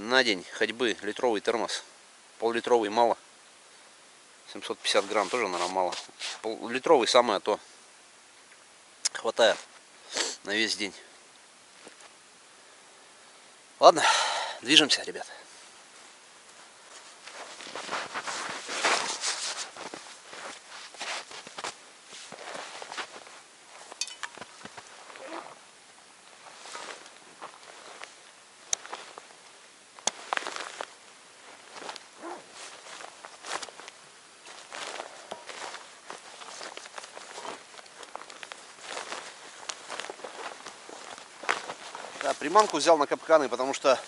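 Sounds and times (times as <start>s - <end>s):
footsteps crunching on snow: 4.8s - 6.4s, 16.0s - 25.6s, 26.3s - 29.4s, 30.0s - 44.0s
clothing rustling: 16.0s - 25.6s, 26.3s - 28.2s, 30.1s - 44.0s.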